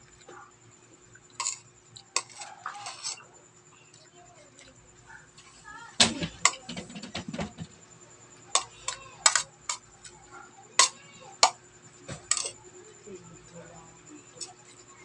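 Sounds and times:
cutlery clinking on plate: 0:02.2 - 0:03.2, 0:08.6 - 0:09.8, 0:10.8 - 0:11.6, 0:12.2 - 0:12.6.

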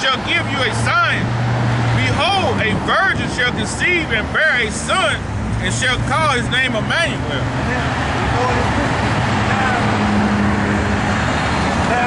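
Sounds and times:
low engine hum: 0:00.0 - 0:12.0
road traffic passing: 0:00.0 - 0:12.0.

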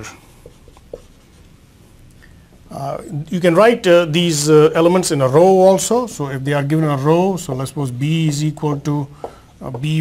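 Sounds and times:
marker writing on whiteboard: 0:00.0 - 0:01.5.

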